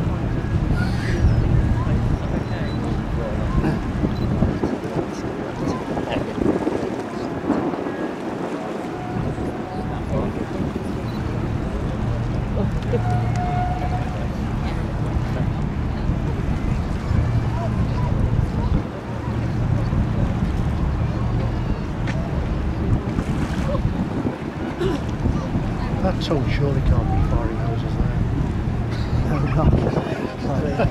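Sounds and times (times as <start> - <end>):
people talking indistinctly: 0.0 - 30.9
tug boat passing: 0.0 - 30.9
wind on microphone: 0.0 - 30.9.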